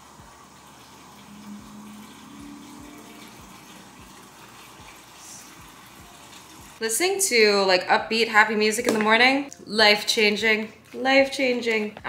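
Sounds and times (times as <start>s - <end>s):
water stream into a cup: 0.0s - 6.8s.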